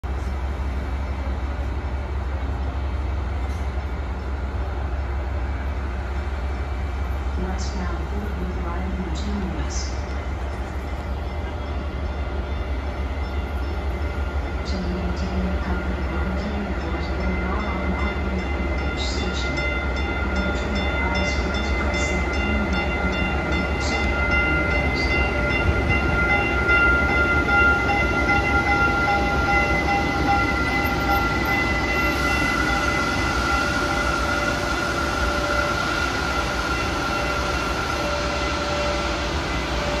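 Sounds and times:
train rumbling with whining tones: 0.0s - 40.0s.

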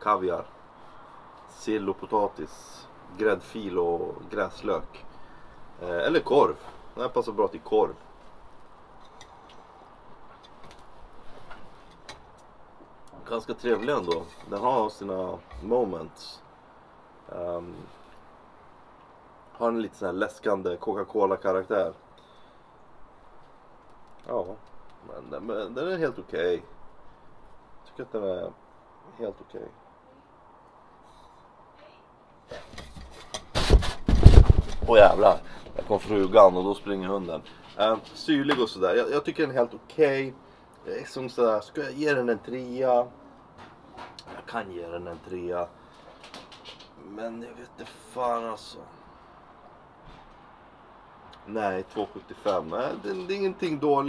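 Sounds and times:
camera handling bumps and rustling: 32.5s - 36.0s.

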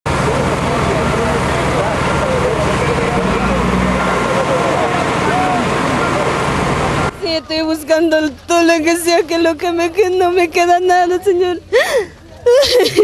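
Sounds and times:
heavy vehicle engine running: 0.0s - 12.4s
distant voices shouting: 0.2s - 7.3s.

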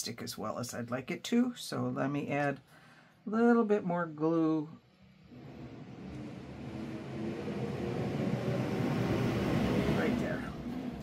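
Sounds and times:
garbage truck engine: 5.1s - 11.0s.

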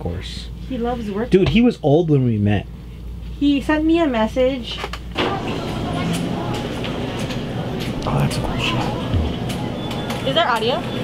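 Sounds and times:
store background noise: 0.0s - 11.0s
faint indistinct voices: 5.1s - 11.0s.

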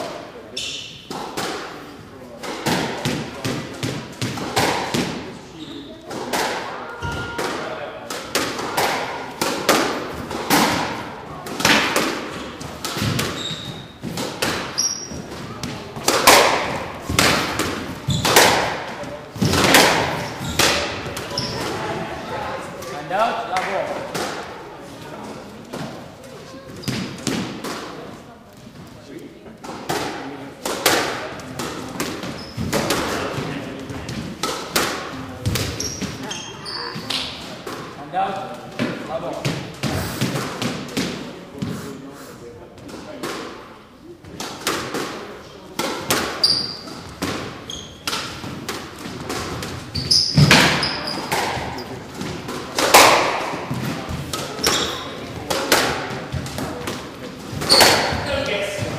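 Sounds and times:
squash ball hitting walls and rackets: 0.0s - 28.3s, 29.4s - 41.8s, 42.8s - 58.9s
shoes squeaking on wooden floor: 12.3s - 15.6s, 18.0s - 18.4s, 20.2s - 21.9s, 32.3s - 32.8s, 35.4s - 37.2s, 46.4s - 48.4s, 49.5s - 52.3s, 53.7s - 55.2s, 57.5s - 58.9s.

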